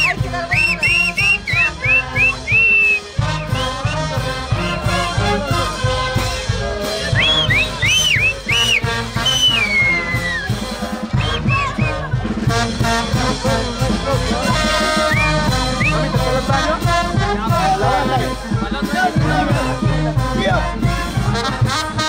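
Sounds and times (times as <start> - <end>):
dancers whistling: 0.0 - 3.9, 7.0 - 10.6, 11.2 - 12.0, 15.0 - 16.1
brass band playing: 0.0 - 22.0.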